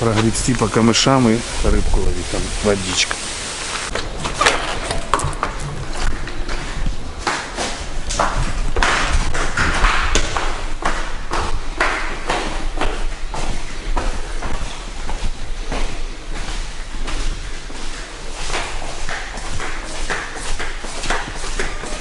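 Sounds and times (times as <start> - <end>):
footsteps climbing tiled stairs: 3.8 - 22.0
door opening with handle clicking: 3.9 - 6.2.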